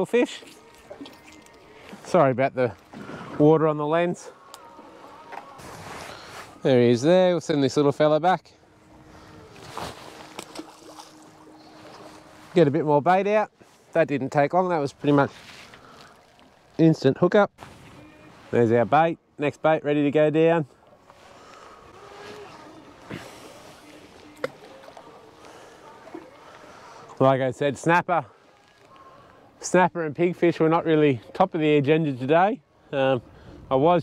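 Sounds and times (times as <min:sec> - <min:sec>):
water lapping against hull: 0:00.0 - 0:06.6, 0:08.6 - 0:14.0, 0:14.6 - 0:16.8, 0:20.6 - 0:27.3, 0:28.1 - 0:29.8
sea noise: 0:00.0 - 0:07.2, 0:08.6 - 0:16.9, 0:17.5 - 0:30.6
wind: 0:00.0 - 0:34.0.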